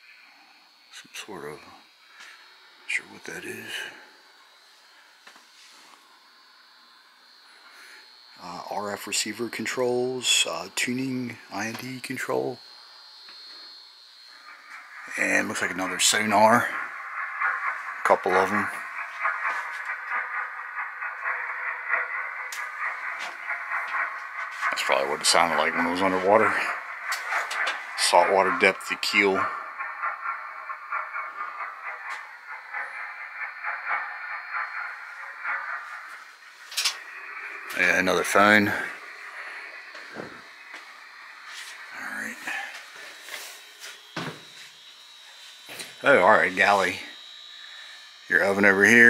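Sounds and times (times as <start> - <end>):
crackly sonar hiss with clicks: 0.0 - 49.0
thin high whine: 0.0 - 49.0.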